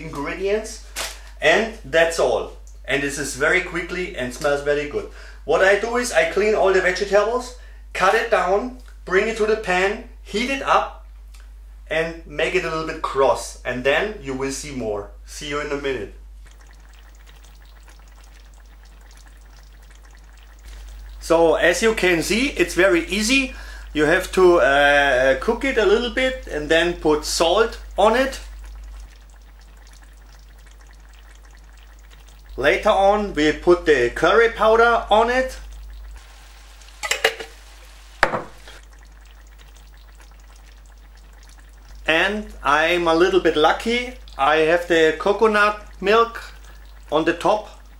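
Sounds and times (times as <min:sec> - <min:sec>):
vegetables sizzling in a pan: 0:36.2 - 0:38.8
utensil clattering against pan: 0:37.0 - 0:37.5
sharp knock: 0:38.2 - 0:38.6.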